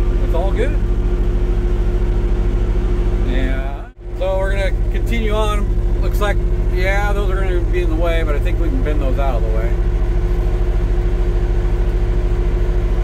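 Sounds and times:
forklift engine idling: 0.0 - 13.0.

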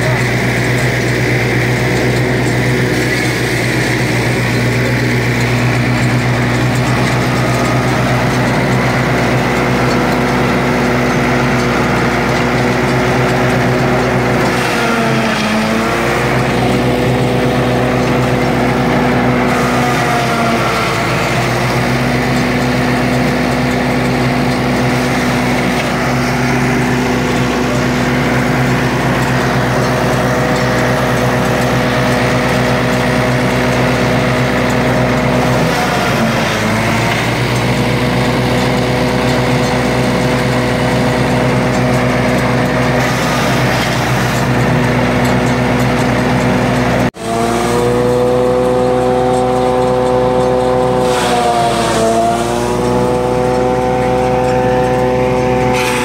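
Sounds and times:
forage chopper: 0.0 - 56.0
tractor diesel engine running: 0.0 - 56.0.

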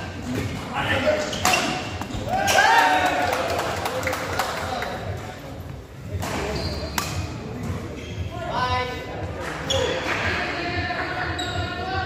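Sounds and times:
voices echoing in sports hall: 0.0 - 12.0.

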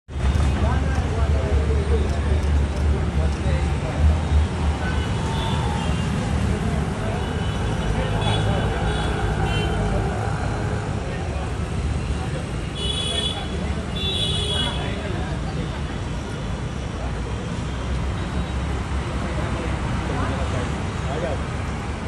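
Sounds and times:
traffic rumble: 0.1 - 22.0.

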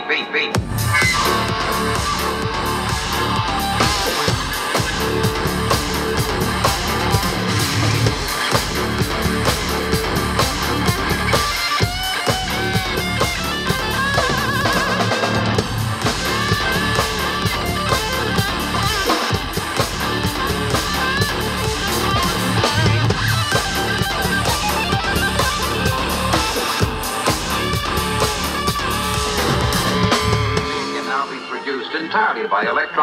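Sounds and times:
synthesizer keyboard: 0.0 - 33.0
drum kit: 0.5 - 31.9
electric guitar: 0.6 - 33.0.

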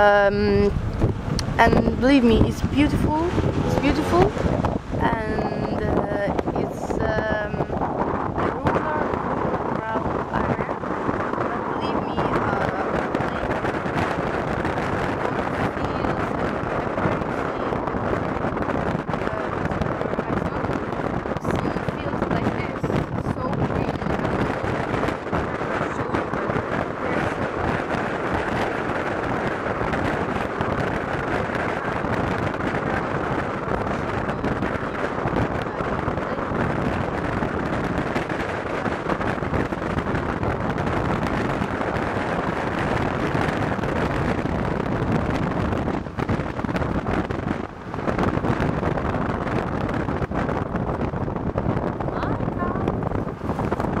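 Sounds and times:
road noise from moving car: 0.0 - 54.0
wind buffeting microphone: 0.0 - 54.0.

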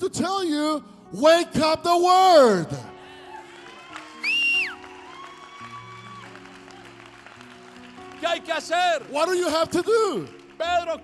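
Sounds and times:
background music of held chords: 0.0 - 11.0.

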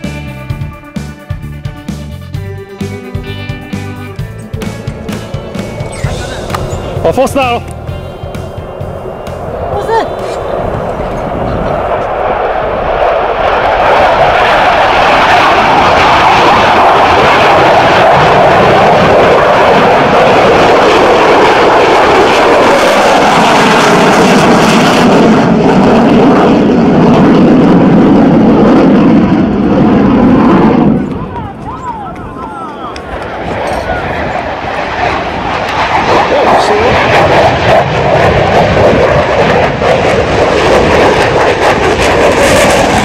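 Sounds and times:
jet engine roaring: 0.0 - 43.0.

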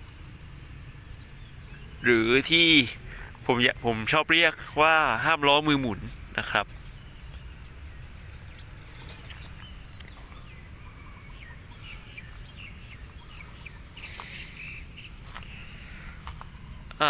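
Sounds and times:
small birds chirping: 0.0 - 17.0
steady low rumble: 0.0 - 17.0
noisy rustle: 6.0 - 10.8.

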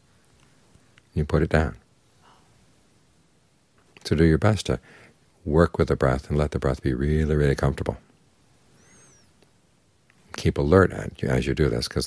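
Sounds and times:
faint high chirp: 8.7 - 9.4.

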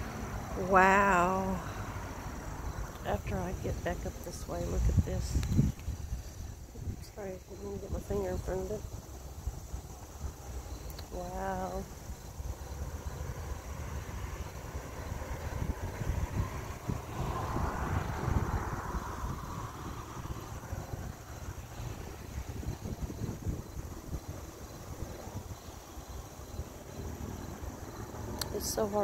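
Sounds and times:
steady low rumble: 0.0 - 29.0.

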